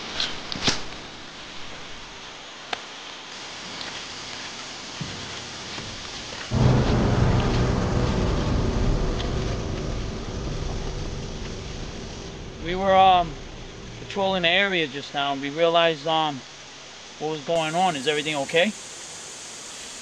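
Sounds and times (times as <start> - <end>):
steady hiss: 0.0 - 20.0
deep rumble: 6.5 - 15.1.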